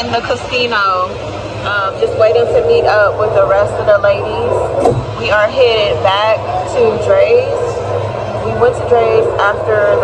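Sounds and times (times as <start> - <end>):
woman speaking: 0.0 - 7.8, 8.4 - 10.0
low steady hum: 0.0 - 10.0.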